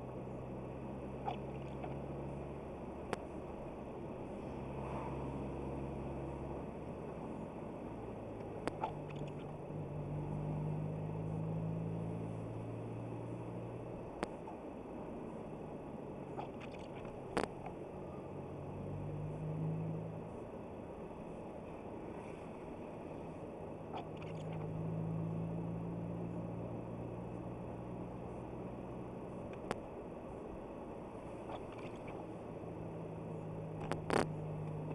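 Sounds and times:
car engine hum: 0.0 - 34.9
road rumble: 0.0 - 34.9.

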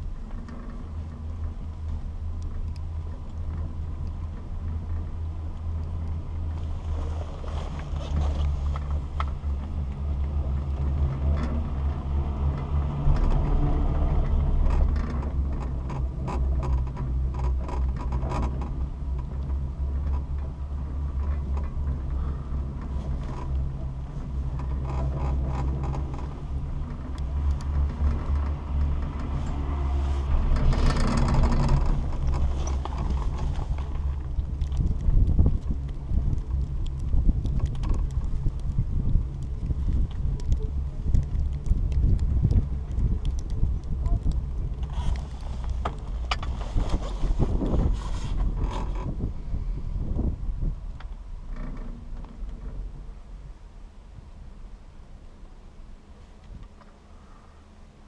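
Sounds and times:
wind buffeting: 0.0 - 54.6
chairlift low rumble: 0.0 - 58.0
chairlift rattling over rollers: 12.4 - 34.4.

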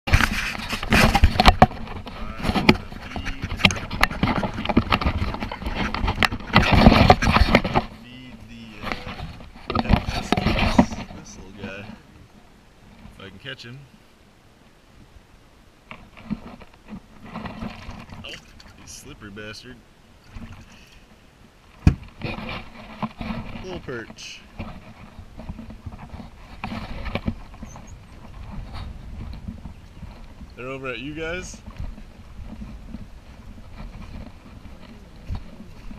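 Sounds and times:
camera handling knocks and scrapes: 0.1 - 8.0, 8.8 - 11.7, 24.6 - 30.4.

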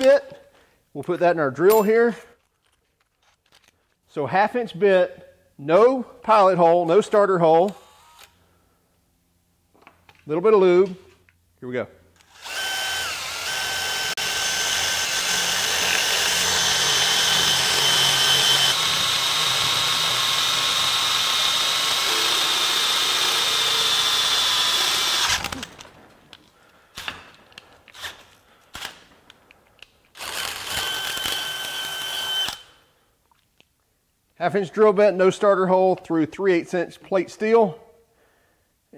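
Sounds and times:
drill whining through steel: 12.2 - 25.7, 30.2 - 32.8.

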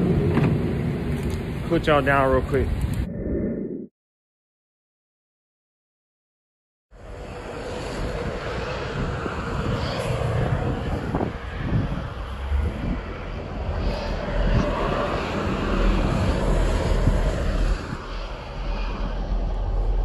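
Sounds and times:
highway traffic rumble: 0.0 - 3.1, 6.9 - 20.0
wind buffeting microphone: 7.0 - 20.0.

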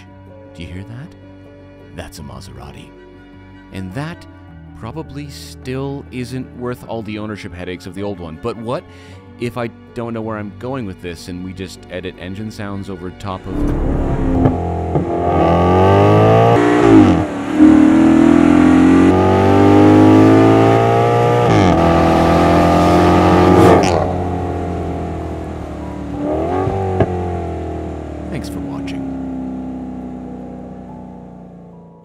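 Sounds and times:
exhaust cracks: 13.4 - 16.3
car engine accelerating: 13.4 - 32.0.

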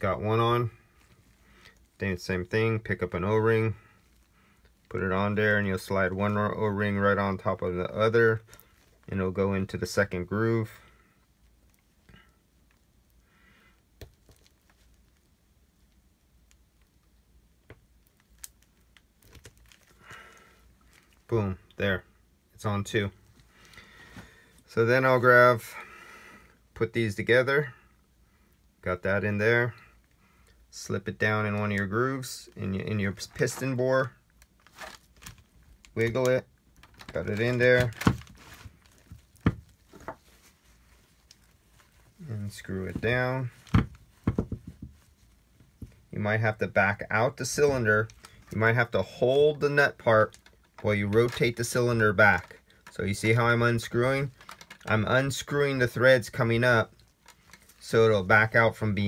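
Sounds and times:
soft rustles of gloved fingers: 0.4 - 25.7, 29.6 - 46.4.

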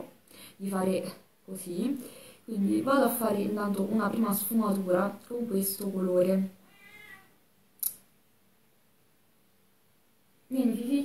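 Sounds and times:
cat meowing faintly: 6.6 - 7.4.

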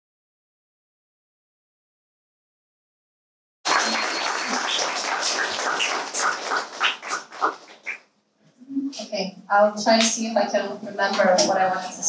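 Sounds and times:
audience applauding: 3.7 - 8.0.

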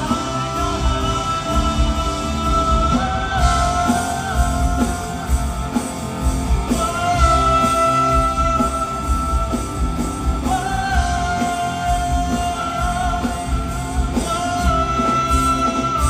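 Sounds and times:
band with steady bass beat: 0.0 - 16.0
man singing pop song: 0.0 - 16.0.

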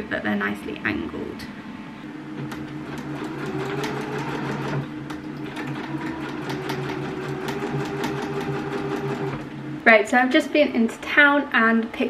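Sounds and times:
sewing machine running: 2.4 - 9.5.

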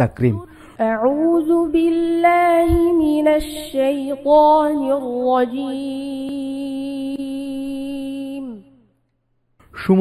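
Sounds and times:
boy reciting melodically: 0.0 - 8.9.

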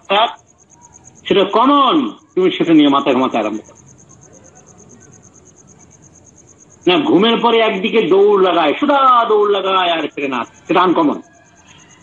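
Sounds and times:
insect chirping: 0.0 - 12.0
man's voice: 1.3 - 3.7, 6.8 - 11.3.

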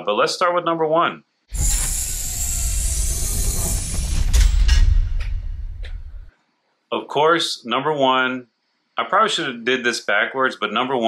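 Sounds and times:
bright hiss: 1.5 - 6.3
deep rumble: 1.5 - 6.3
dense mechanical noise: 1.5 - 6.3.

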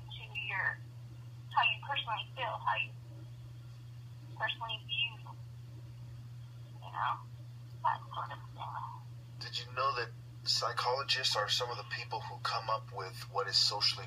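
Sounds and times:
low hum: 0.0 - 14.0
speech over telephone line: 0.1 - 0.8, 1.6 - 3.0, 4.4 - 5.3, 6.8 - 14.0.

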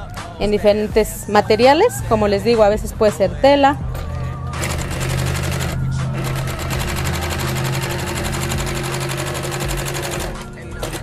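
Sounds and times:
sewing machine motor hum: 4.3 - 11.0
sewing machine stitching rapidly: 4.6 - 11.0.

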